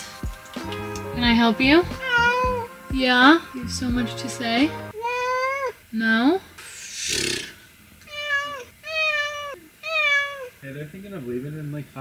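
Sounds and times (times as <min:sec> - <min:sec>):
cat meowing: 0:02.0 - 0:02.7, 0:05.0 - 0:05.8, 0:08.1 - 0:10.6.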